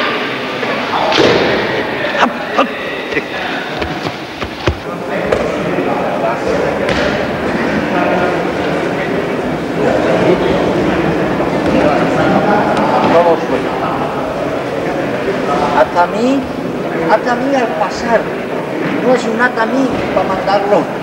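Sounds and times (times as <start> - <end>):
indistinct voices: 0.0 - 21.0
sharp knocks and thumps: 3.1 - 5.5.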